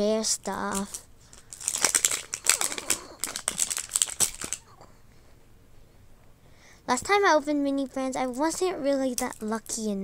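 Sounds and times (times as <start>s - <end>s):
plastic wrapper crinkling: 0.5s - 4.8s.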